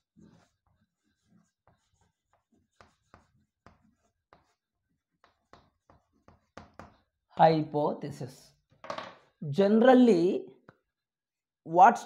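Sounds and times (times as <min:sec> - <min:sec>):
chalk scratching on blackboard: 0:00.0 - 0:07.1.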